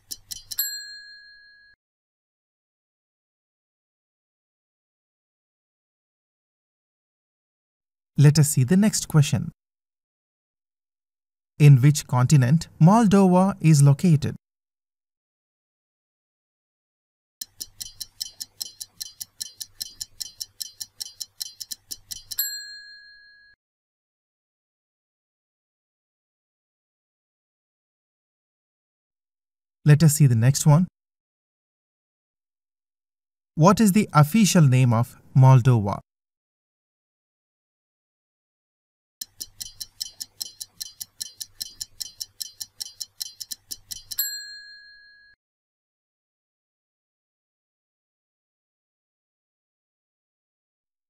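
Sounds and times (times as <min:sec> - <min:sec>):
timer ticking rapidly: 0:00.0 - 0:00.6, 0:17.4 - 0:22.5, 0:39.2 - 0:44.3
bell ding: 0:00.6 - 0:01.8, 0:22.4 - 0:23.6, 0:44.2 - 0:45.4.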